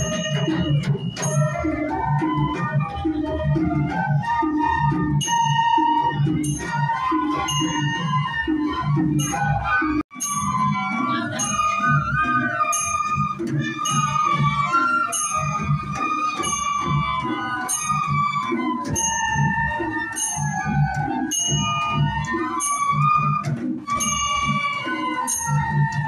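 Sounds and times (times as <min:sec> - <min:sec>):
bamboo flutes playing a melody: 0:00.0 - 0:26.0
drum beating steady rhythm: 0:00.0 - 0:26.0.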